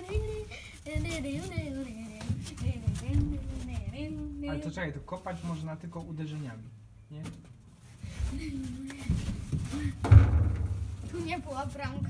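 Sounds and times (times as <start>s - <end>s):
thumps from movement near microphone: 0.0s - 4.4s.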